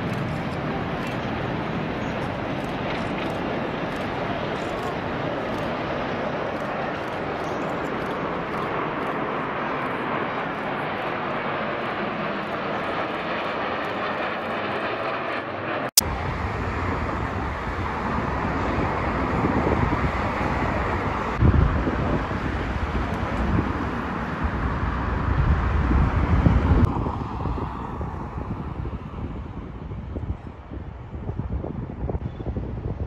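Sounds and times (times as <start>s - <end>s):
jet aircraft roar: 0.0s - 33.0s.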